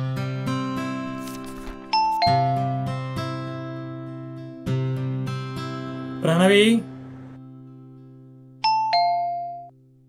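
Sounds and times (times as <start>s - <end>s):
acoustic guitar strumming: 1.8s - 8.6s.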